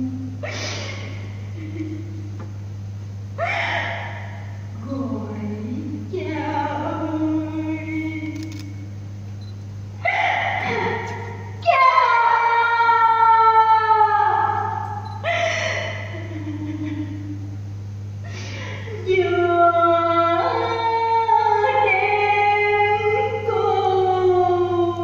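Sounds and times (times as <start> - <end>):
steady low hum: 0.0 - 25.0
woman singing opera-style: 4.8 - 8.4, 19.0 - 25.0.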